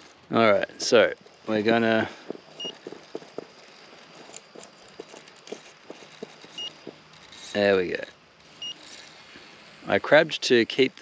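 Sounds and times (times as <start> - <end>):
faint hiss: 0.0 - 11.0
rc car knocking on rock: 1.3 - 7.3.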